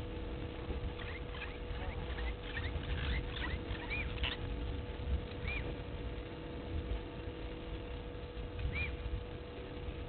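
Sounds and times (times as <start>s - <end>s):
low steady rumble: 0.0s - 10.0s
small bird chirping: 0.9s - 4.5s, 5.3s - 5.8s, 8.6s - 9.0s.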